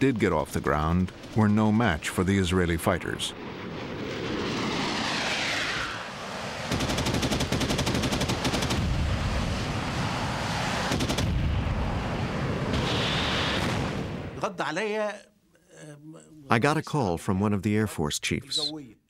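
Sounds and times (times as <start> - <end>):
jet roar: 0.0 - 14.4
jet passing with falling whine: 1.0 - 14.4
aircraft cannon fire: 3.2 - 14.4.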